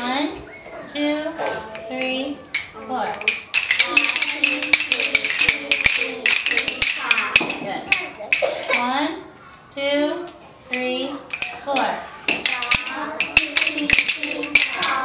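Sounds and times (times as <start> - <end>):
children tapping wooden sticks: 0.0 - 9.0, 10.2 - 15.0.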